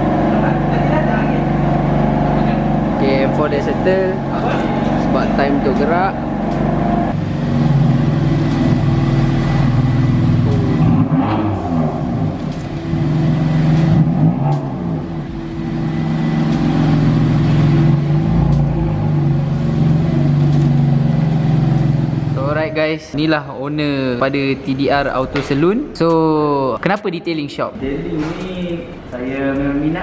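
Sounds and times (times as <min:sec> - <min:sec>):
car engine revving and driving off: 0:00.0 - 0:23.0.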